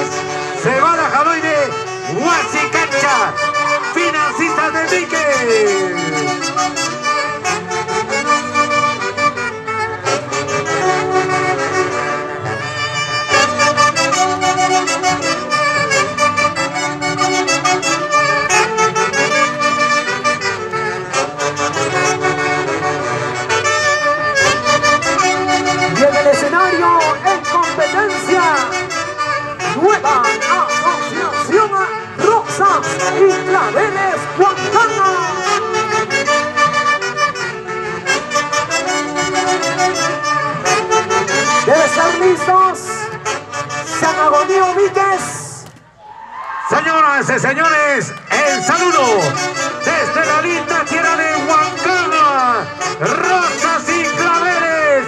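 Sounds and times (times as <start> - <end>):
folk orchestra with saxophones: 0.0 - 46.0, 46.7 - 55.0.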